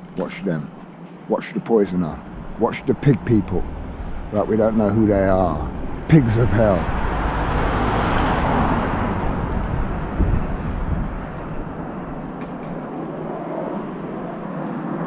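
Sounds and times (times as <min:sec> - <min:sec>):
road vehicle passing by: 0:01.9 - 0:15.0.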